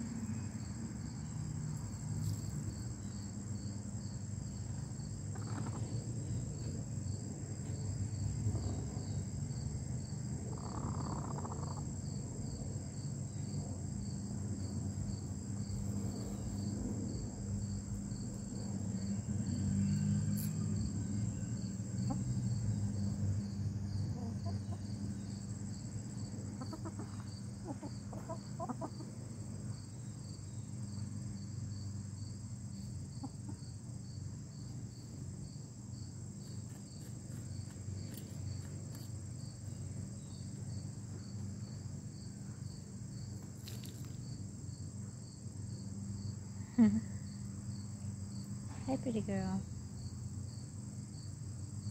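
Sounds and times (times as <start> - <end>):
insect chirping: 0.0 - 51.9
hens clucking: 26.6 - 29.1.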